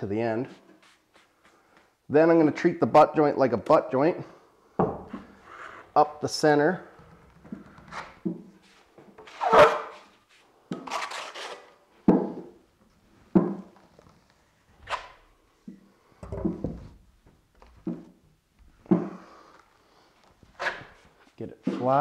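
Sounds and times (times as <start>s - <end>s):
trowel scraping drywall compound: 10.8s - 11.8s.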